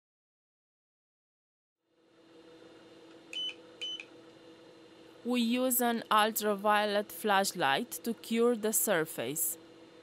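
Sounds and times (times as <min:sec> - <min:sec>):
steady low hum: 0:01.9 - 0:10.0.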